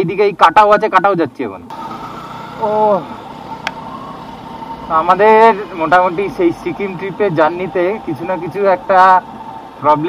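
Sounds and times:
motorcycle engine humming: 1.7s - 10.0s.

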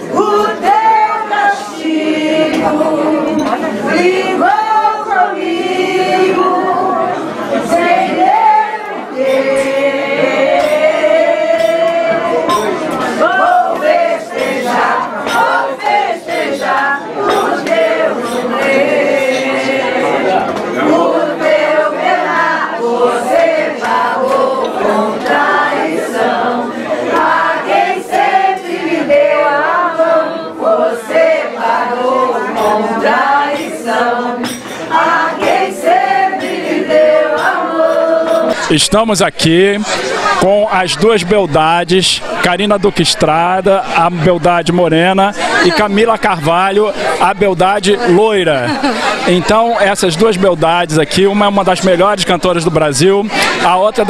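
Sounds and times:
group singing long held notes: 0.0s - 50.6s, 53.2s - 54.0s.

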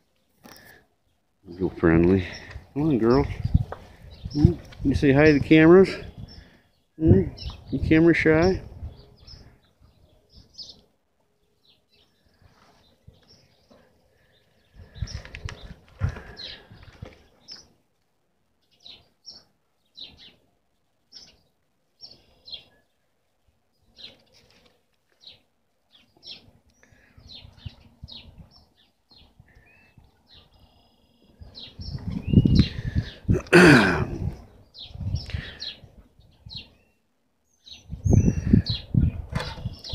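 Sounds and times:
small birds chirping: 0.0s - 39.9s.

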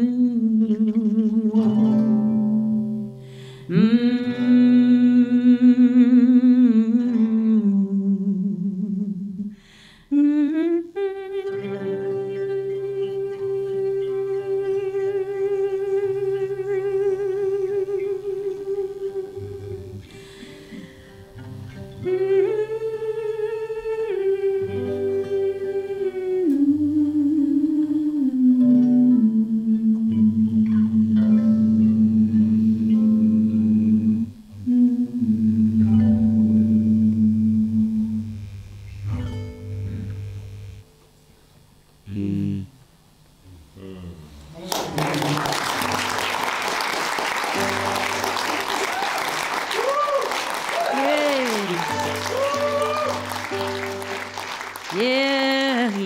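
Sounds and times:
woman singing wordless notes: 0.0s - 20.8s, 21.9s - 40.9s, 50.8s - 56.0s
acoustic guitar: 0.0s - 56.0s.

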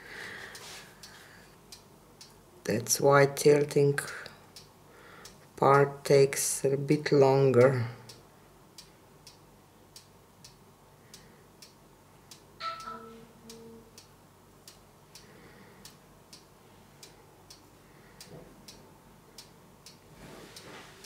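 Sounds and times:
clock ticking: 8.8s - 20.0s
short two-part tone: 12.6s - 13.9s.

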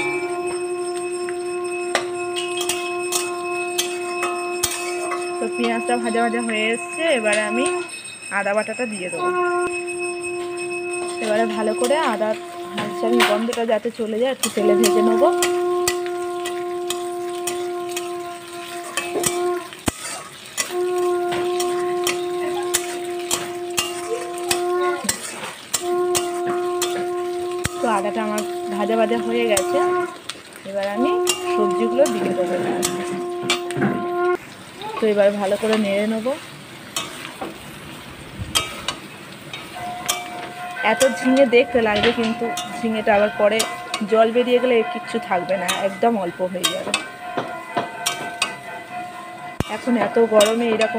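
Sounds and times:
steady horn-like note: 0.0s - 7.9s, 9.2s - 13.6s, 14.4s - 19.8s, 20.6s - 30.2s, 30.8s - 34.4s
metal spatula scraping a wok: 0.0s - 34.4s, 35.0s - 37.9s, 38.5s - 50.9s
onions frying with light sizzle: 0.0s - 50.9s.

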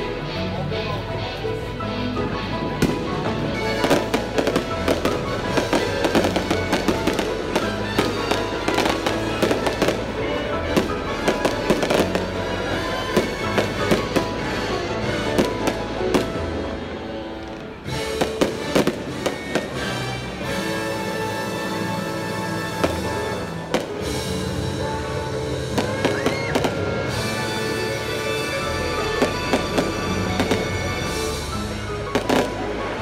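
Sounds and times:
steady music: 0.0s - 33.0s
fireworks bangs and crackles: 2.6s - 33.0s.

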